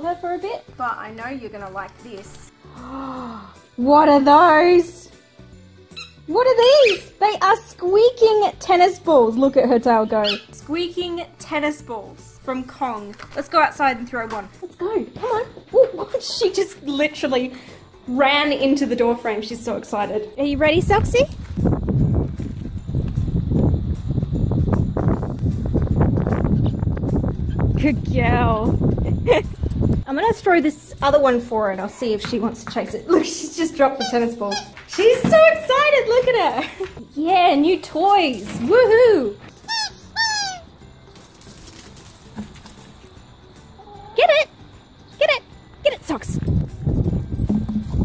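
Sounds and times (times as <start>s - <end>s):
rubber toy squeak: 5.9s - 6.2s, 6.8s - 7.2s, 10.2s - 10.6s, 39.7s - 40.7s
footsteps on gravel: 20.7s - 24.7s.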